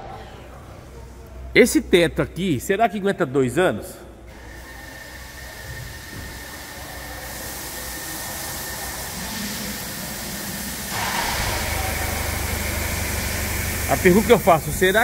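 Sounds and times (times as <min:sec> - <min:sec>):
steady hissing: 0:04.5 - 0:15.0
low hum: 0:11.0 - 0:15.0.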